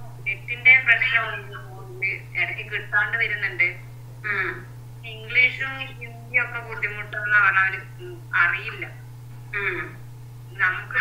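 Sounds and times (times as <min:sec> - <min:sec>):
steady low hum: 0:00.0 - 0:11.0
person speaking over video call: 0:00.1 - 0:09.0, 0:09.6 - 0:11.0.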